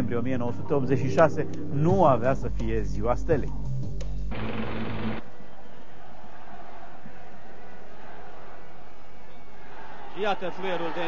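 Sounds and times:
low background music: 0.0 - 5.5
broadcast hiss: 4.3 - 5.2.

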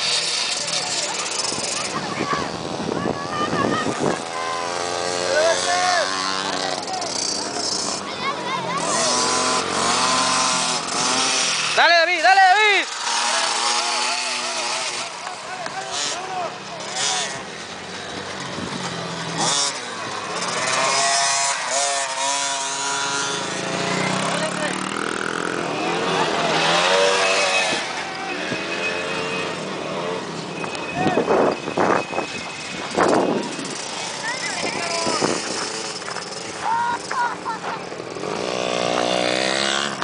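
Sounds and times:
dirt bike engines revving: 0.0 - 40.0.

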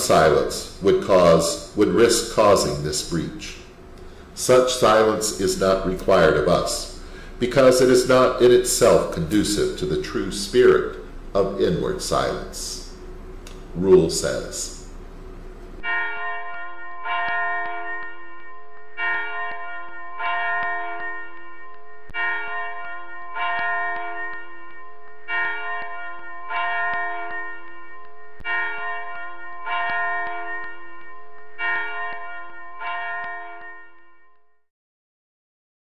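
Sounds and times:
church bells ringing: 0.0 - 3.8, 4.4 - 13.0, 15.8 - 34.6.

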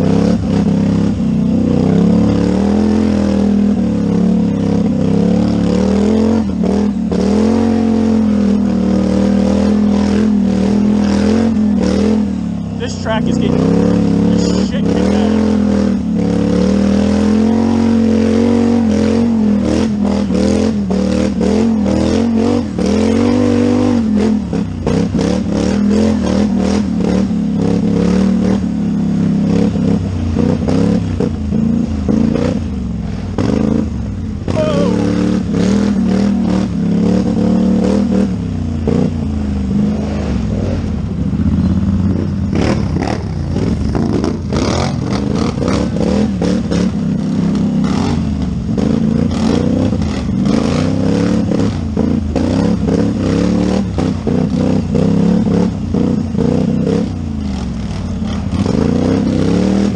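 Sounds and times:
quad bike engine revving: 0.0 - 59.9.

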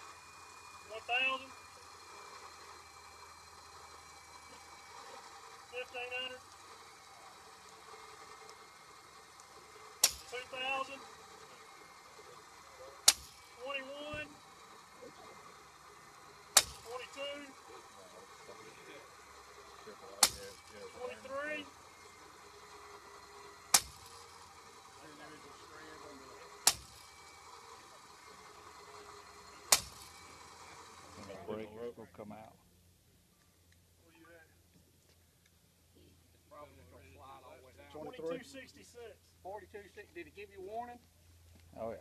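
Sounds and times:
sharp clicks of rope rig: 6.5 - 11.5, 13.0 - 14.2, 16.5 - 17.5, 20.2 - 21.3, 23.6 - 24.5, 26.6 - 27.7, 29.7 - 30.4
quiet voices: 9.5 - 23.1.

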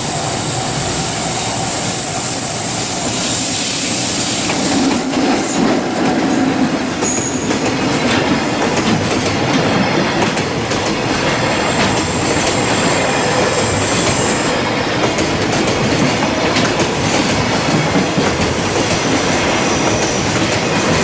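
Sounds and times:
high wheel squeal: 0.0 - 7.5
train wheels clattering over rail joints: 4.2 - 21.0.

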